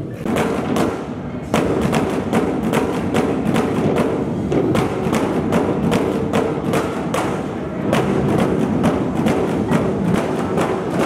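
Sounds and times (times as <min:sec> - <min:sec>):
drum struck in steady beat: 0:00.2 - 0:11.0.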